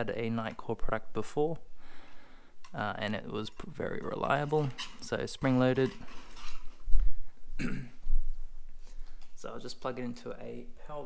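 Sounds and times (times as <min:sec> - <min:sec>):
man clearing his throat: 0:07.6 - 0:08.0
man coughing: 0:07.6 - 0:08.0.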